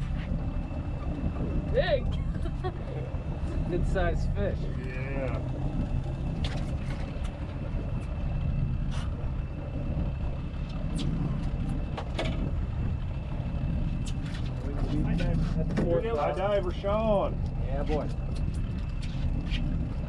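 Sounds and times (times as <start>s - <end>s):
boat engine humming: 0.0s - 20.0s.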